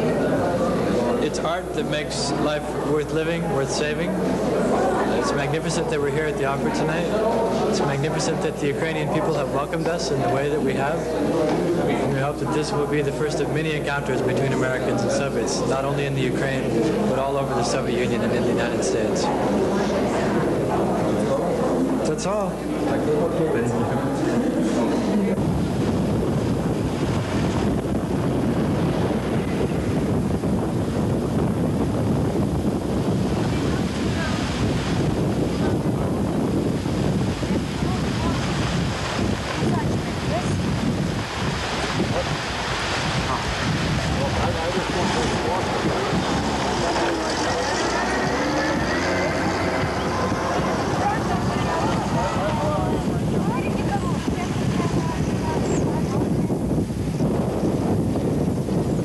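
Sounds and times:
faint indistinct voices: 0.0 - 58.2
strong wind on microphone: 0.0 - 59.0.

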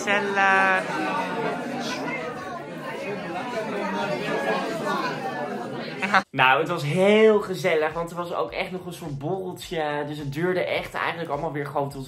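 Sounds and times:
chatter of people talking: 0.0 - 6.3.

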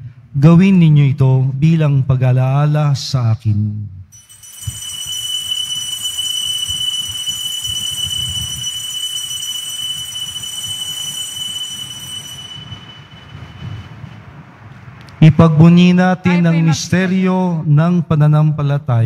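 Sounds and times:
altar bells ringing: 4.2 - 14.2.

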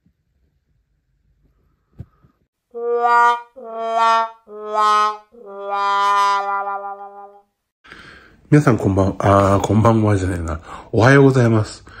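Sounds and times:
sad trombone note: 2.8 - 7.4.

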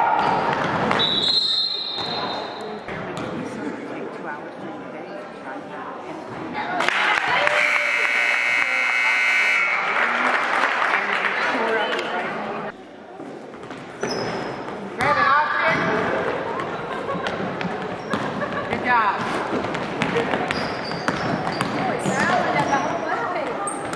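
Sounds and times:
loud crowd voices: 0.0 - 23.9
scoreboard buzzer: 7.4 - 10.0.

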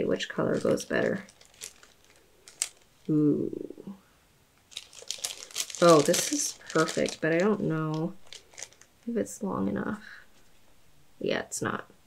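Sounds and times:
paper sticker sheet crinkling: 0.5 - 3.1, 4.7 - 9.0.

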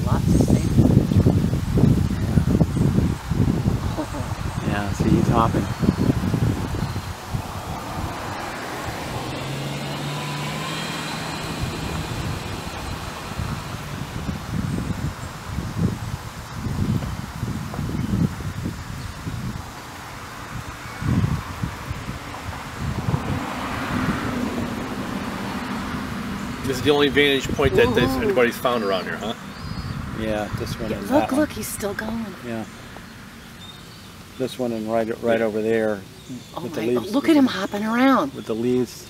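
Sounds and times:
wind gusts buffeting microphone: 0.0 - 33.2.

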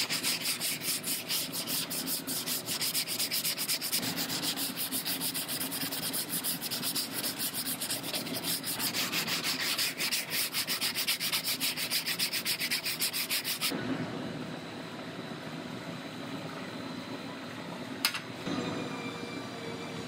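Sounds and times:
sandpaper rubbing on filler: 0.0 - 13.7.

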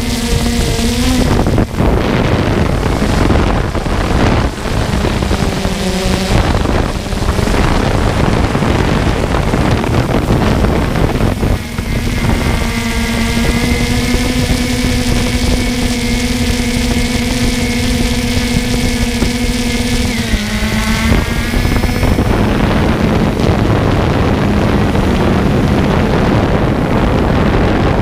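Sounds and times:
drone propellers humming: 0.0 - 28.0
wind noise on microphone: 0.0 - 28.0.

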